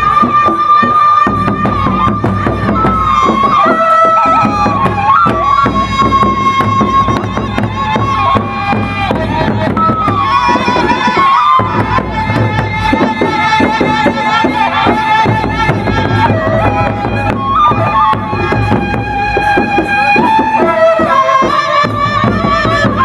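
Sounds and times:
large drums beaten: 0:00.0 - 0:23.0
wind instrument sliding melody: 0:00.0 - 0:23.0.

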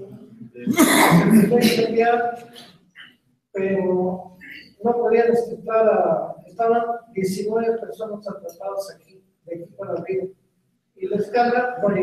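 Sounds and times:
person speaking: 0:00.0 - 0:02.7, 0:03.6 - 0:10.4, 0:11.0 - 0:12.0.

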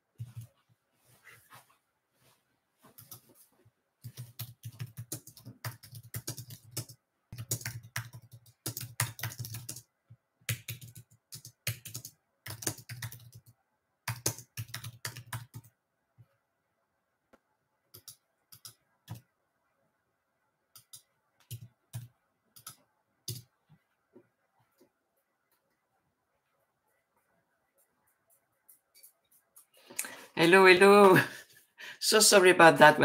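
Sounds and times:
typing on a computer keyboard: 0:04.0 - 0:15.8, 0:17.9 - 0:19.3, 0:20.7 - 0:23.5.

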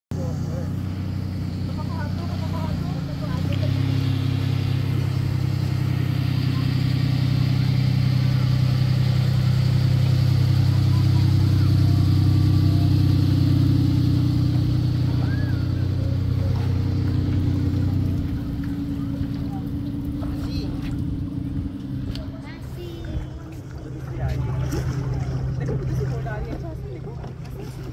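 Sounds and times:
vehicle engine running: 0:00.1 - 0:27.9.

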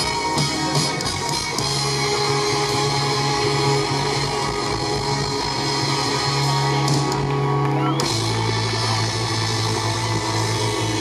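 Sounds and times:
rock band playing loud chord: 0:00.0 - 0:11.0.

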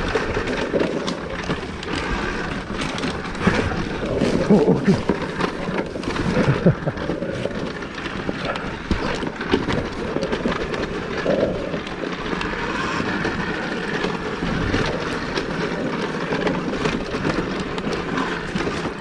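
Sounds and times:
bike knocks and rattles: 0:00.0 - 0:19.0
tyres rolling over dirt: 0:00.0 - 0:19.0.

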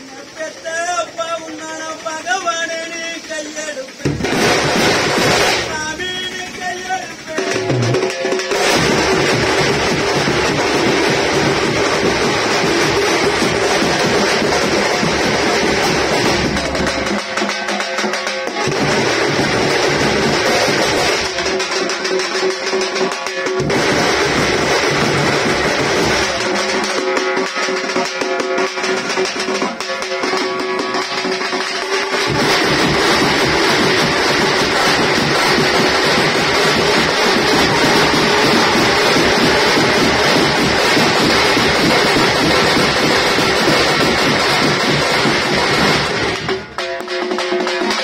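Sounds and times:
dense drumming: 0:00.3 - 0:48.0.

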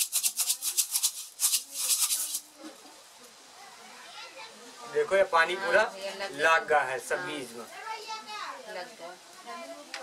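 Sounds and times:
seeds rattling in clay pot: 0:00.0 - 0:02.5.

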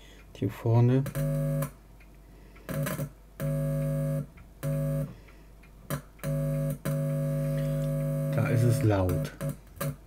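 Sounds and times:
electrical buzz from circuit board: 0:01.0 - 0:01.8, 0:02.7 - 0:05.2, 0:05.9 - 0:10.0.

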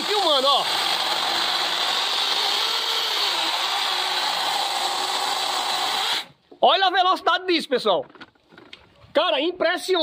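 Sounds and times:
chainsaw cutting log: 0:00.0 - 0:06.4.

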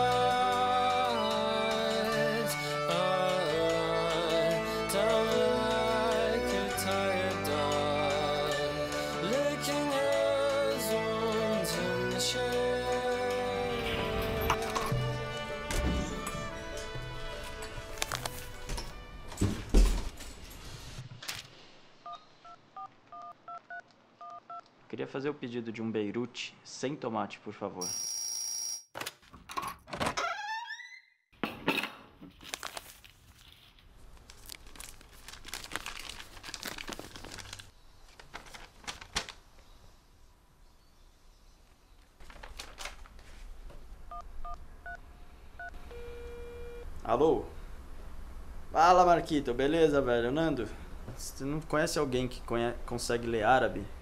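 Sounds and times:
steady phone tone: 0:44.1 - 0:46.9.

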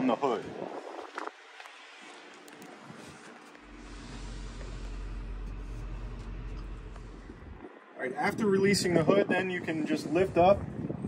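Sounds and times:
wind buffeting microphone: 0:00.0 - 0:01.6, 0:02.8 - 0:11.0.

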